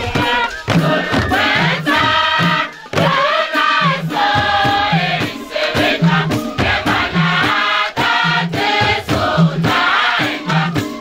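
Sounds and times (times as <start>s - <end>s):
hand drums struck with palms: 0.0s - 11.0s
mixed choir singing: 0.0s - 11.0s.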